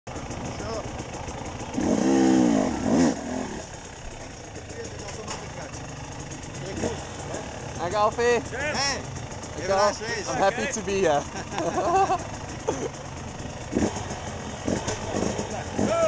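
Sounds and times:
motorcycle engine revving: 0.1s - 16.0s.

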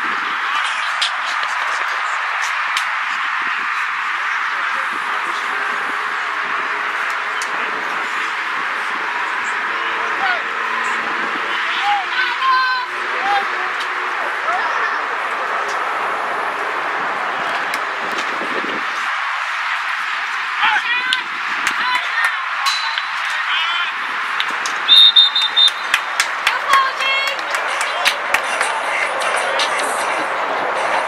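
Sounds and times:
outdoor background noise: 0.0s - 31.0s
people shouting: 0.0s - 31.0s
referee's whistle blast: 24.9s - 25.9s.

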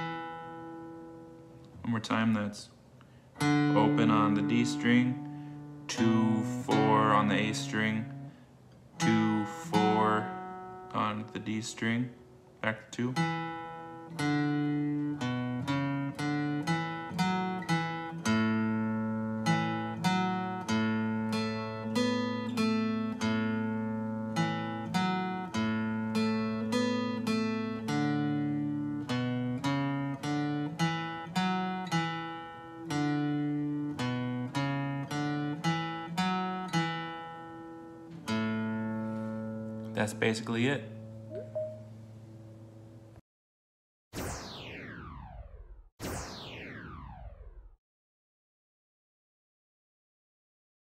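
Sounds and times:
acoustic guitar bass riff: 3.4s - 8.4s, 9.0s - 11.3s, 13.1s - 42.2s.

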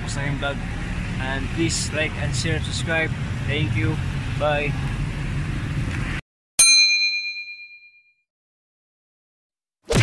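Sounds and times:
street traffic: 0.0s - 6.2s
bell-like chime: 6.6s - 8.2s.

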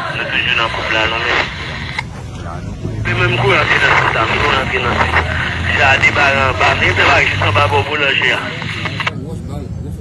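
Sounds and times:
man's voice: 0.0s - 1.6s, 2.8s - 10.0s
faint voices: 0.0s - 10.0s
street low rumble: 0.0s - 10.0s.

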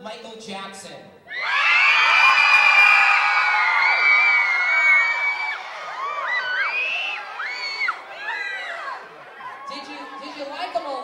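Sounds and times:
audience cheering and screaming: 1.3s - 10.6s.

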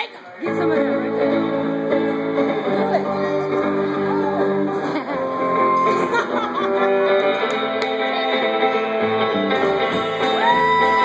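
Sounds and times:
live band playing: 0.4s - 11.0s.

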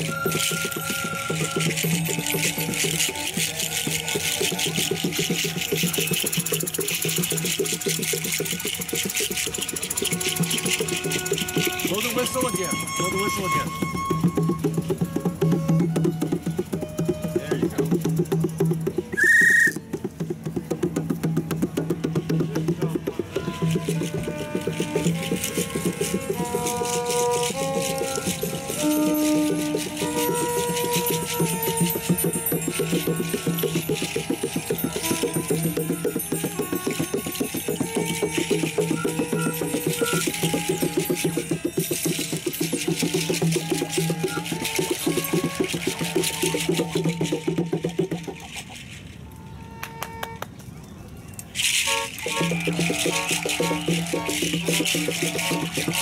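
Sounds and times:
rattling percussion: 0.0s - 56.0s
high whistle note: 19.2s - 19.8s.

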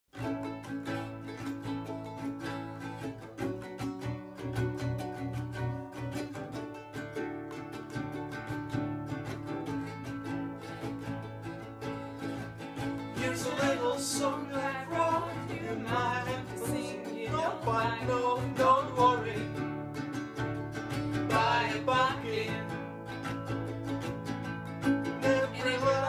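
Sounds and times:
acoustic guitar strumming: 0.1s - 26.0s
ukulele strumming: 0.1s - 26.0s.

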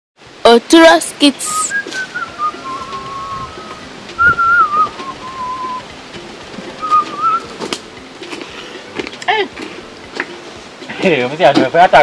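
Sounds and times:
person whistling a tune: 1.5s - 5.9s, 6.8s - 7.6s.

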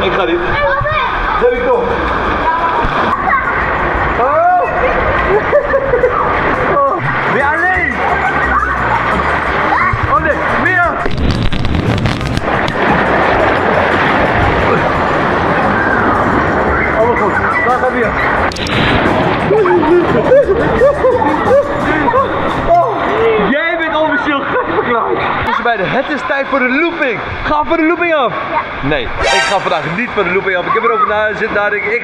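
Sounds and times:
rushing churning water: 0.0s - 32.0s
people shrieking and whooping: 7.8s - 10.1s, 19.4s - 23.6s.

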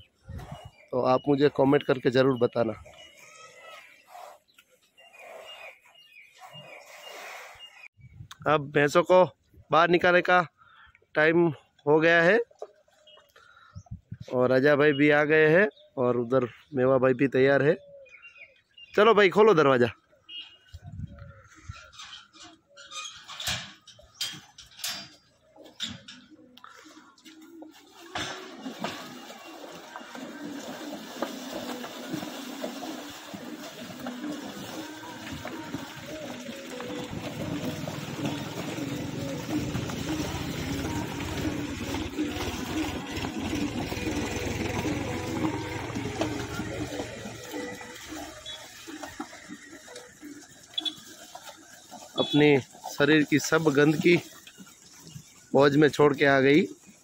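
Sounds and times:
metal gate clanking and rattling: 22.0s - 26.4s
water splashing: 26.9s - 57.0s.

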